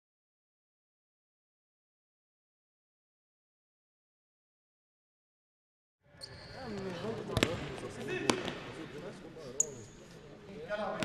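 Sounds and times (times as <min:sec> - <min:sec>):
players' voices: 0:06.2 - 0:11.0.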